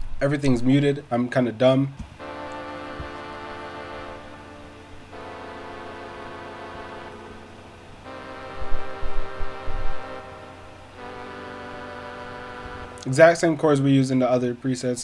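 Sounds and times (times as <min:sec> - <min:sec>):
string synth minor chords: 0:02.2 - 0:14.1.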